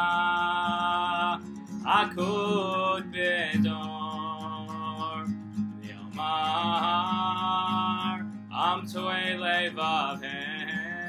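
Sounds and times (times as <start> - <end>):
man singing: 0.0 - 11.0
strummed acoustic guitar: 0.0 - 11.0.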